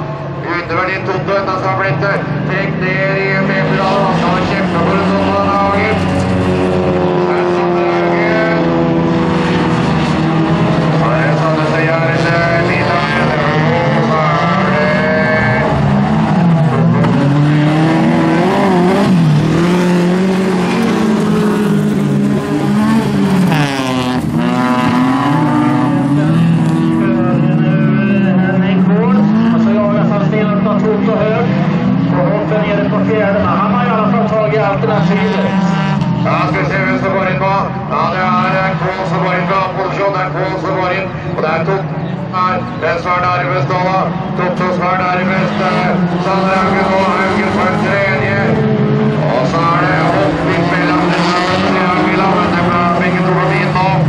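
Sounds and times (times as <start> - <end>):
race car engines revving past: 0.0 - 54.0.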